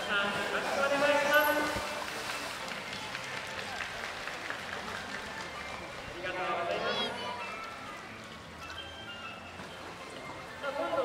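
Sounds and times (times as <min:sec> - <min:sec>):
faint crowd voices: 0:00.0 - 0:11.0.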